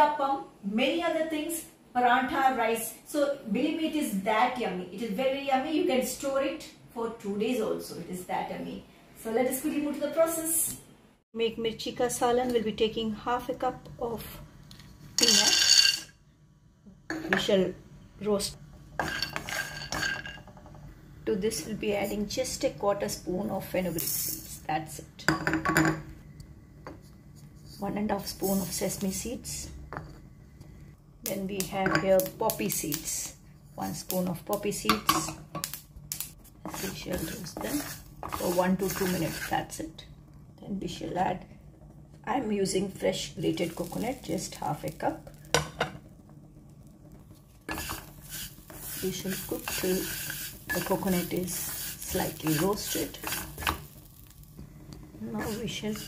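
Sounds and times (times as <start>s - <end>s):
peanuts rattling in a pan: 15.2s - 16.0s, 35.6s - 39.6s, 43.2s - 45.6s, 47.7s - 54.6s.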